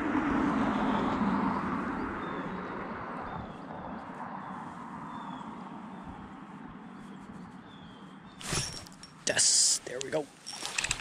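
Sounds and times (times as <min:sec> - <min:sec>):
passing motor vehicle rumble: 0:00.0 - 0:09.0.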